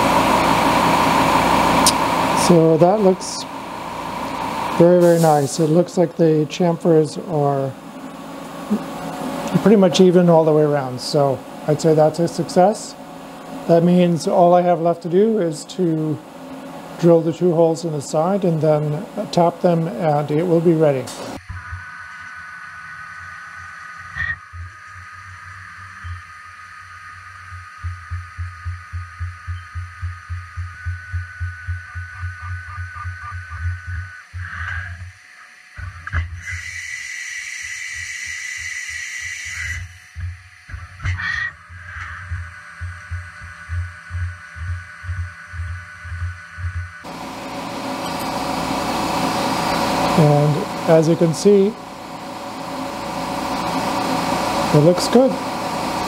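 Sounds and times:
cnc mill drilling whine: 0:00.0 - 0:35.9, 0:42.0 - 0:56.0
burst of hiss: 0:04.8 - 0:06.0, 0:36.4 - 0:39.9.

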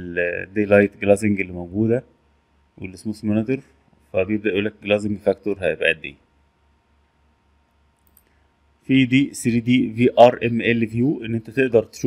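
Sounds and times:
man talking: 0:00.0 - 0:02.2, 0:02.8 - 0:06.2, 0:08.8 - 0:12.0
computer mouse click: 0:08.0 - 0:08.4.

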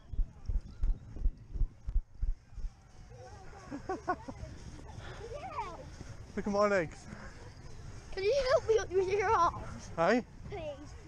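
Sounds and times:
running footsteps on grass: 0:00.3 - 0:11.0.

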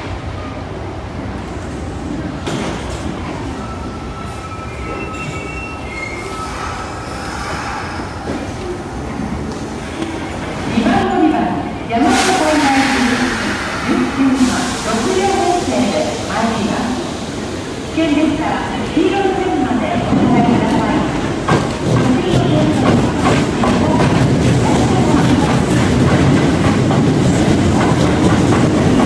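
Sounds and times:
train wheels rumbling on rails: 0:00.0 - 0:29.0
loud train hiss: 0:12.0 - 0:18.4.

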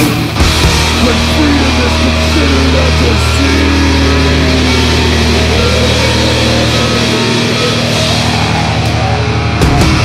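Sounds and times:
bass guitar low notes: 0:00.0 - 0:10.0
distorted electric guitar: 0:00.0 - 0:10.0.

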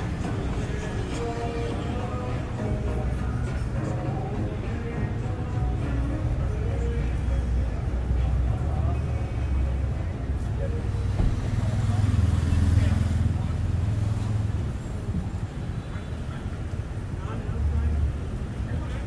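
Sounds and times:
people's voices: 0:00.0 - 0:19.0
street traffic rumbling: 0:00.0 - 0:19.0.

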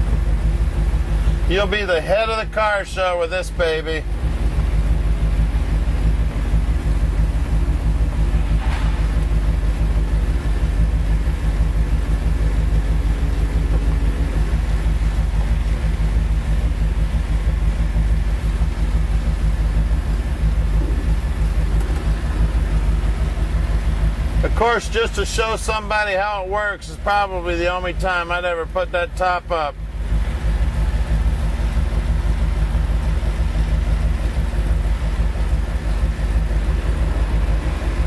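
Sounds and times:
car engine idling: 0:00.0 - 0:38.0
convertible top mechanism hum: 0:00.0 - 0:38.0.

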